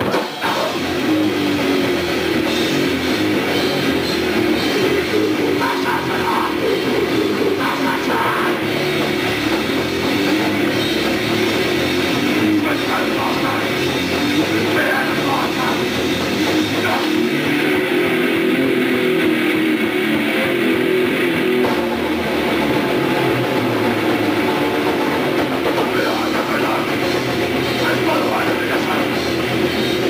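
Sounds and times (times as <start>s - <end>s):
distorted guitars: 0.0s - 30.0s
drum kit: 0.0s - 30.0s.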